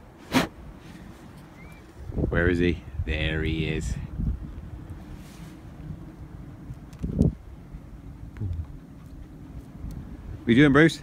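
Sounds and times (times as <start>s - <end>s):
wind buffeting microphone: 1.5s - 11.0s.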